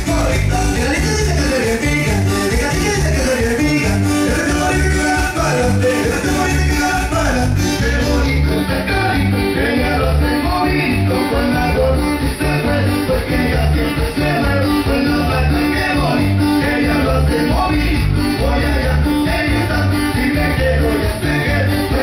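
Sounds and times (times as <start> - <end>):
band playing cumbia: 0.0 - 22.0
guitars: 0.0 - 22.0
pulsing bass beat: 0.0 - 22.0.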